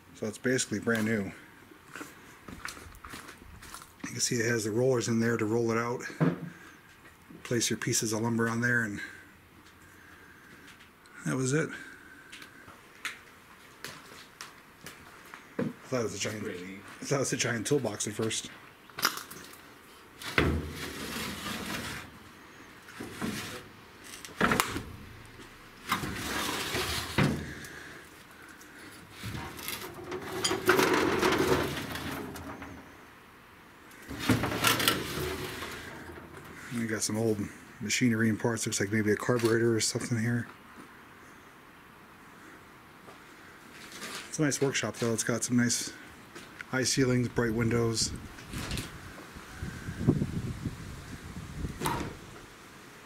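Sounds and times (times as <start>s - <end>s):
footsteps and rustling: 0.9s - 4.1s, 12.3s - 17.2s
metal drawer scraping: 20.2s - 22.2s, 22.9s - 25.2s, 25.8s - 27.9s, 29.2s - 32.9s, 34.0s - 36.8s.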